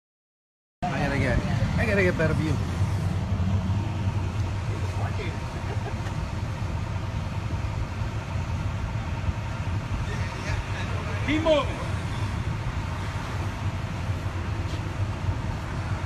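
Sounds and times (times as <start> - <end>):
faint street noise: 0.8 - 16.0
vehicle engine idling: 0.8 - 16.0.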